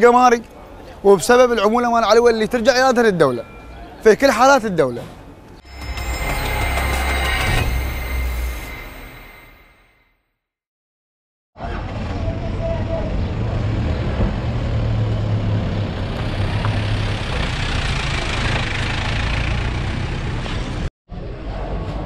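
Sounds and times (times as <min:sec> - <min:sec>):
vehicle engines running: 0:11.6 - 0:20.9.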